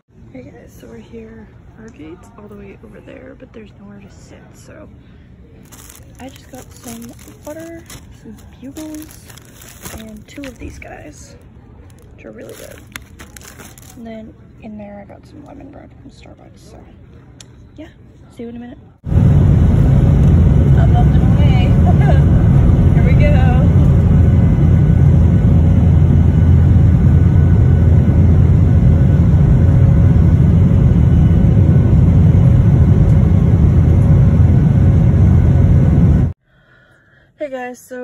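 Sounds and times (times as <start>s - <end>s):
jet engine cabin noise: 5.6s - 14.0s, 19.0s - 36.4s.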